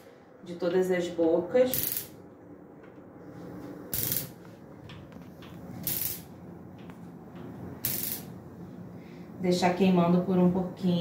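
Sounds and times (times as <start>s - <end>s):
low steady gas hiss: 0.0s - 11.0s
gas burner igniting: 1.7s - 2.2s, 3.7s - 6.7s, 7.3s - 8.6s.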